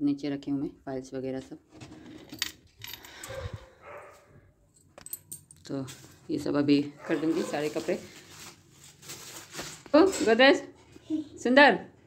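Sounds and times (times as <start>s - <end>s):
keys jangling against metal: 2.3s - 3.7s, 4.7s - 5.7s.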